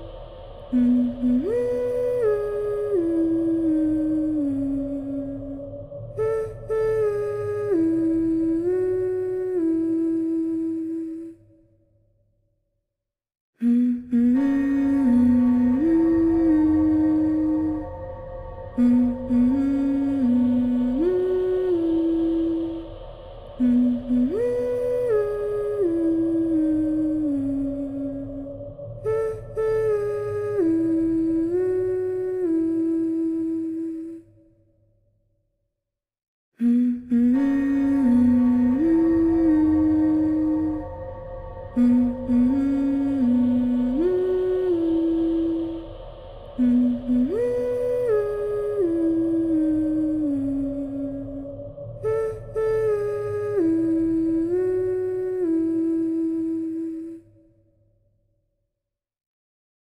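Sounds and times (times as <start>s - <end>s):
faint steady drone: 0.0s - 11.9s, 13.6s - 34.7s, 36.6s - 57.8s
person humming: 0.7s - 11.4s, 13.6s - 17.9s, 18.8s - 22.8s, 23.6s - 28.4s, 29.1s - 34.3s, 36.6s - 41.0s, 41.8s - 45.8s, 46.6s - 57.3s.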